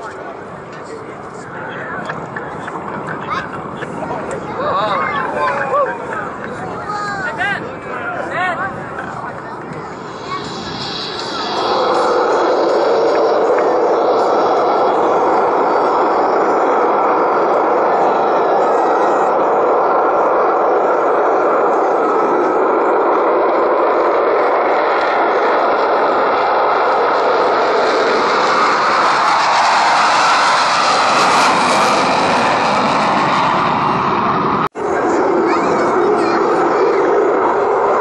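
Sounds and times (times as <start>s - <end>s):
jet engines at takeoff power: 0.0s - 38.0s.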